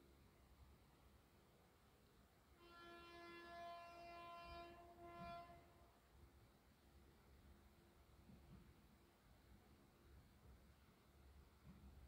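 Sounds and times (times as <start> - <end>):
faint train horn blast: 2.5 - 6.2.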